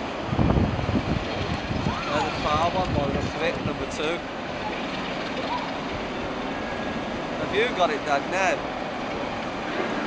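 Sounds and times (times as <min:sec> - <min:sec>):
diesel locomotive running slowly: 0:00.0 - 0:10.0.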